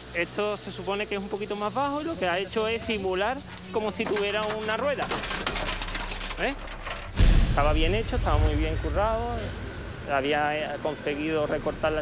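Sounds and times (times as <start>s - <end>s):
sheet metal clicks and rattles: 3.4s - 7.2s.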